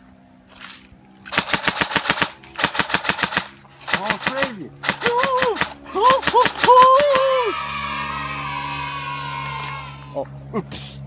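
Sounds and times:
airsoft gun firing bursts: 0:01.3 - 0:07.4.

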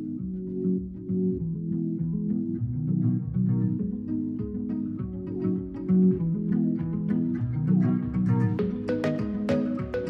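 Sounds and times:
bass line: 0:00.0 - 0:10.0
plucked guitar: 0:00.0 - 0:10.0.

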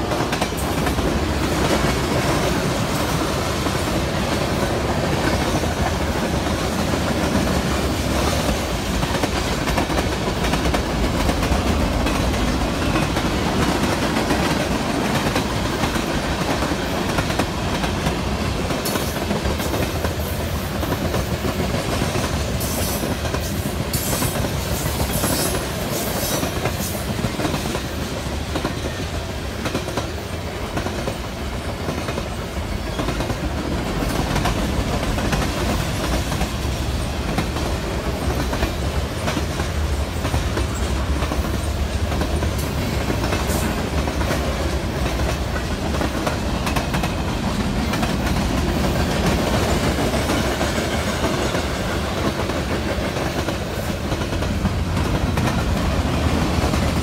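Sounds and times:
train wheels on rails: 0:00.0 - 0:57.0.

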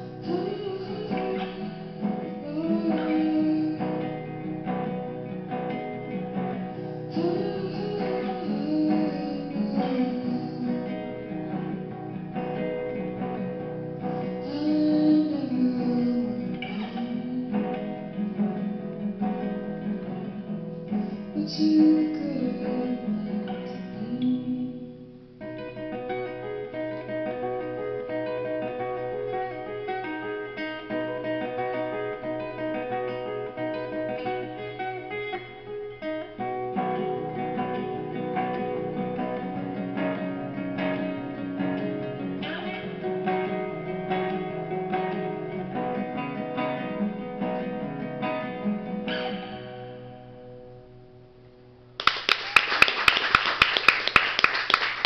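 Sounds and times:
fingerpicked acoustic guitar: 0:00.0 - 0:52.0
audience clapping: 0:52.0 - 0:55.0.

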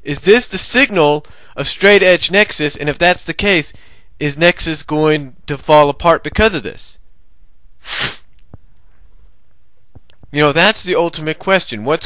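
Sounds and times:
man sneezing: 0:07.8 - 0:08.3.

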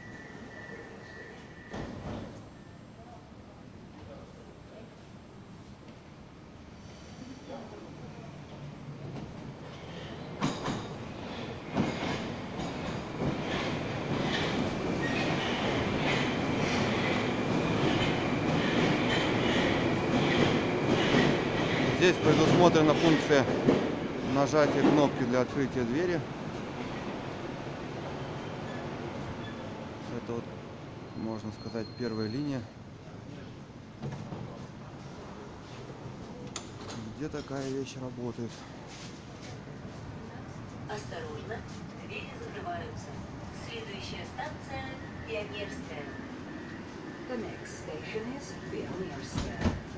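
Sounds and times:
rumble of train wheels: 0:00.0 - 0:02.6, 0:03.9 - 0:49.9
high-pitched train whine: 0:00.0 - 0:05.4.

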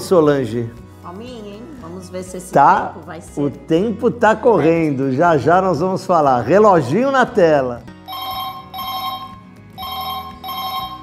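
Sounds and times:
electronic two-pitch phone ring: 0:08.1 - 0:11.0.

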